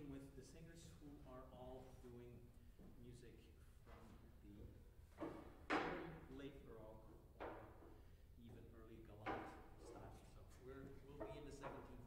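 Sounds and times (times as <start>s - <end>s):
sharp knocks: 5.1s - 6.2s.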